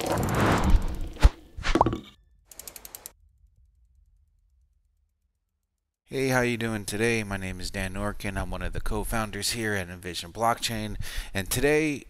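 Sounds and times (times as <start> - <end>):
quick mechanical clicks: 2.5 - 3.1.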